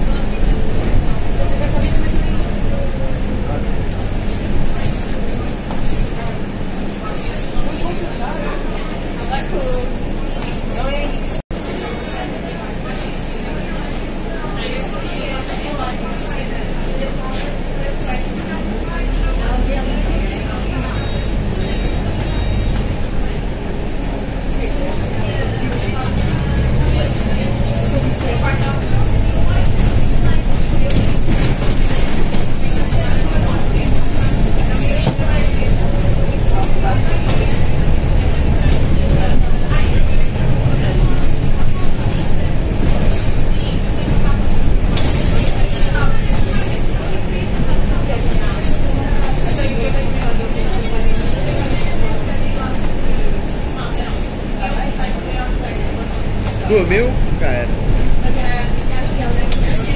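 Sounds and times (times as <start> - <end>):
bus engine running: 0.0 - 59.9.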